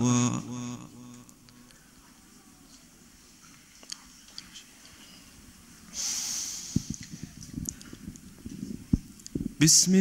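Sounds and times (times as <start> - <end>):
deep breath into microphone: 5.9 - 7.4.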